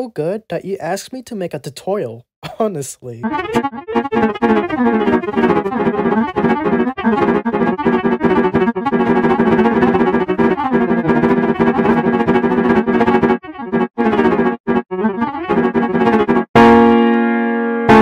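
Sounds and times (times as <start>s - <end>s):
piano chords: 3.2s - 18.0s.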